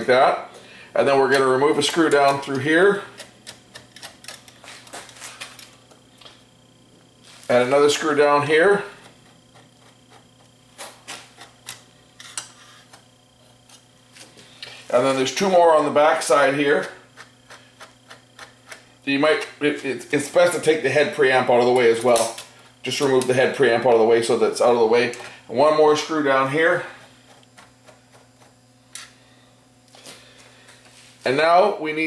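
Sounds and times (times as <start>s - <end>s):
faint steady hum: 0.0s - 32.0s.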